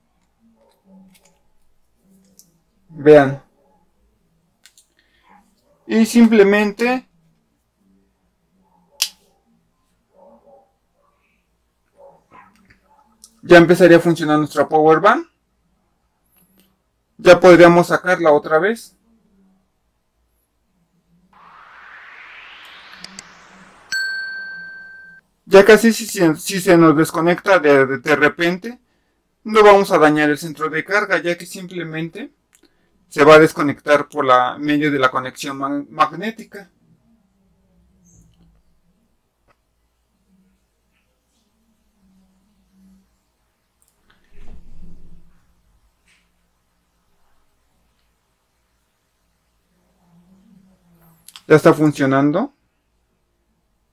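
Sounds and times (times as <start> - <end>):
rising whoosh: 21.4 - 25.2
bell-like ding: 23.9 - 25.2.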